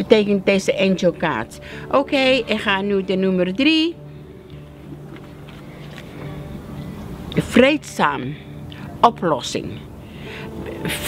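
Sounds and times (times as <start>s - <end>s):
low hum of sustained tones: 0.0s - 11.0s.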